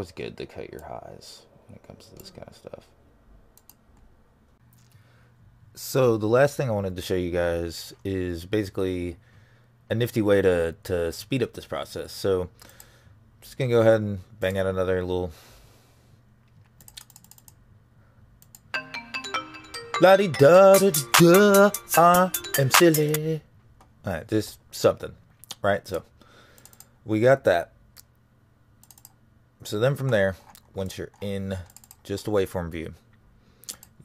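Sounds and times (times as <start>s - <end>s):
computer mouse clicks: 3.6s - 4.1s, 16.5s - 17.6s, 18.4s - 18.7s, 26.6s - 26.9s, 28.8s - 29.2s, 30.5s - 32.0s
rap instrumental beat: 18.8s - 23.4s.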